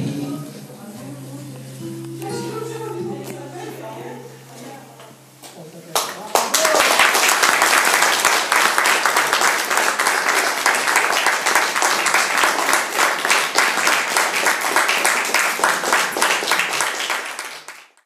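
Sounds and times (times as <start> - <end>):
audience applauding: 5.9 - 18.0.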